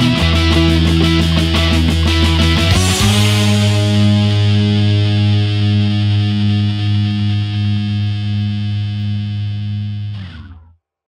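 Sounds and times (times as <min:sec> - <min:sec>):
distorted electric guitar chord: 0:00.0 - 0:10.7.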